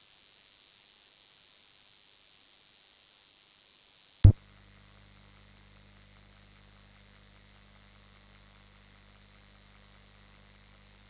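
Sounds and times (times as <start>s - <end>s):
electrical mains hum with hiss: 0.0s - 11.0s.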